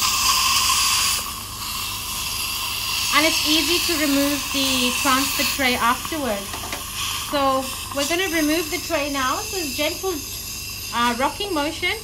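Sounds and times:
dental suction hissing: 0.0 - 12.0.

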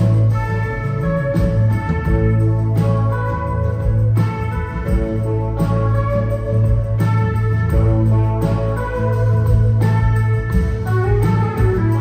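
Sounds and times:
drums: 0.0 - 12.0
ringing guitars: 0.0 - 12.0.

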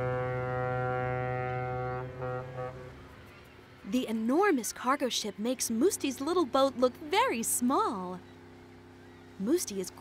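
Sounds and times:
ship's horn blasts: 0.0 - 3.1.

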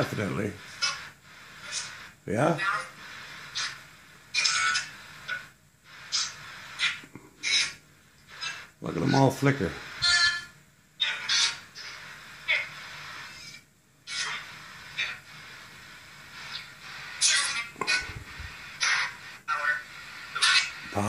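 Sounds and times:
garbled radio voice fragments: 0.0 - 5.5, 6.1 - 7.8, 8.4 - 15.3, 16.5 - 21.0
steady radio hiss: 0.0 - 21.0.

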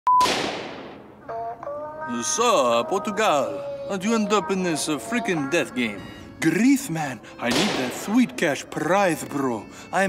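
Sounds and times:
gunshot with echo: 0.2 - 1.1, 7.5 - 8.1.

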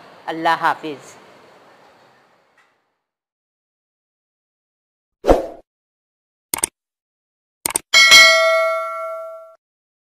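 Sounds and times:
notification bell ding: 8.0 - 9.6.

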